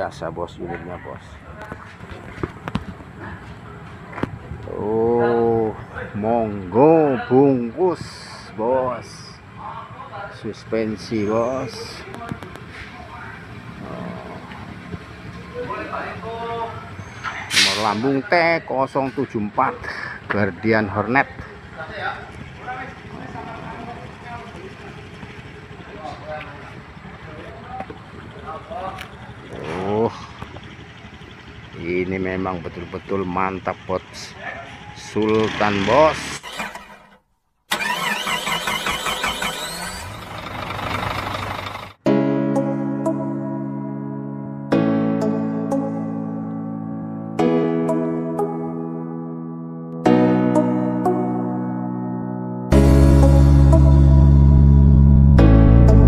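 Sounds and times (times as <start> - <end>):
background voices talking: 0.0 - 36.4
steady low rumble: 52.7 - 56.0.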